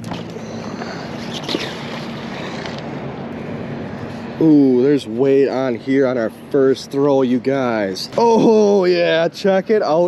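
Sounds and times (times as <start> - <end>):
low steady hum: 0.0 - 10.0
outdoor wind noise: 0.0 - 10.0.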